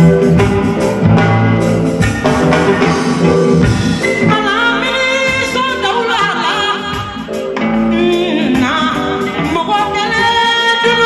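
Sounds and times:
bass guitar: 0:00.0 - 0:11.0
live band music: 0:00.0 - 0:11.0
person singing: 0:04.0 - 0:11.0.

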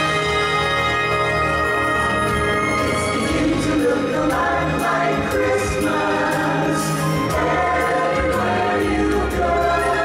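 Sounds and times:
instrumental accompaniment with bass: 0:00.0 - 0:10.0
choir singing: 0:01.9 - 0:10.0.

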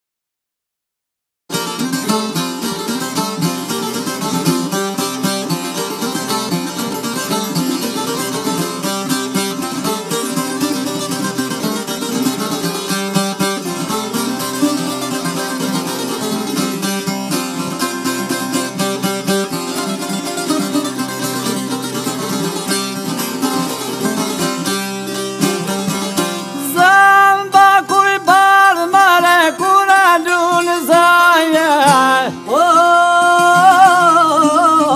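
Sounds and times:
plucked lutes playing folk music: 0:01.5 - 0:34.9
person singing: 0:26.5 - 0:34.9.

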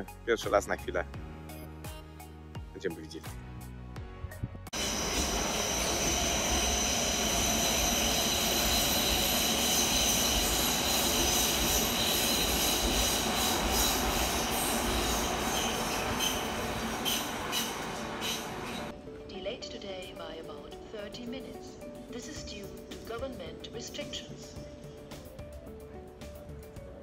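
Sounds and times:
electric train rolling rumble: 0:04.8 - 0:18.9
train wheels squealing: 0:04.8 - 0:18.9.

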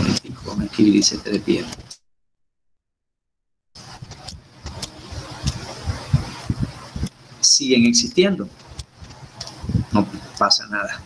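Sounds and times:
even hiss: 0:03.8 - 0:11.0.

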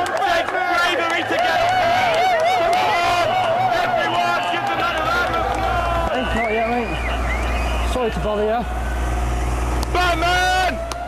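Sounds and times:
men shouting: 0:00.0 - 0:11.0
vehicle engine rumbling: 0:01.1 - 0:11.0.

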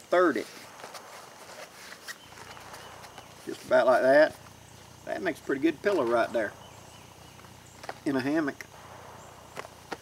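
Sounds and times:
mat rustling: 0:00.2 - 0:05.0.

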